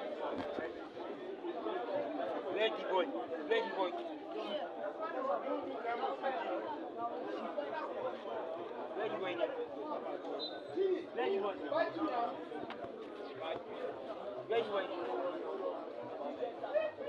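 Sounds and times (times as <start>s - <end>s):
chatter of many voices: 0.0s - 17.0s.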